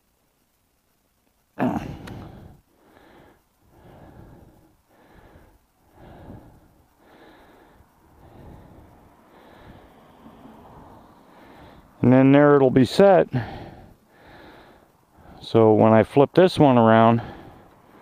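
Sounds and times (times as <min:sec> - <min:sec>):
soft breaths close to microphone: 0:02.0 - 0:15.8, 0:16.8 - 0:18.0.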